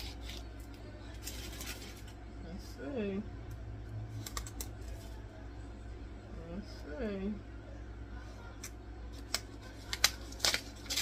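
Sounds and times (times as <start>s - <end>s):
paper and tape peeling crackles: 9.1s - 11.0s.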